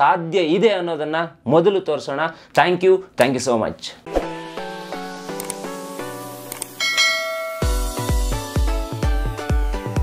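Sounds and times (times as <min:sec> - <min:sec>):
bright bell ding: 0:06.8 - 0:08.1
electronic dance beat: 0:07.6 - 0:10.0.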